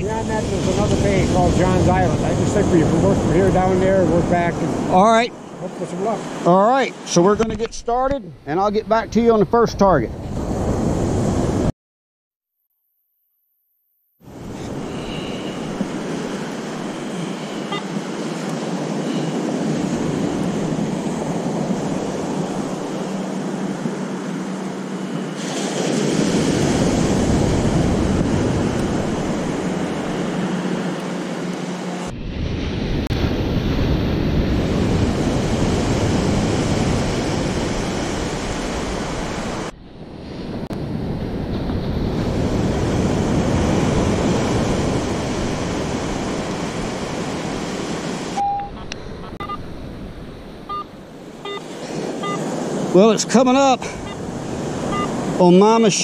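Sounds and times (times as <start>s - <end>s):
wind on microphone: 0.0s - 5.0s, 9.0s - 11.7s, 14.2s - 53.0s
surf breaking on beach: 0.0s - 7.6s, 14.2s - 48.4s, 49.3s - 56.0s
metal detector beeps: 14.6s - 15.8s, 17.2s - 18.0s, 19.0s - 19.4s, 48.4s - 49.6s, 50.7s - 52.4s, 54.0s - 54.2s, 54.9s - 55.2s.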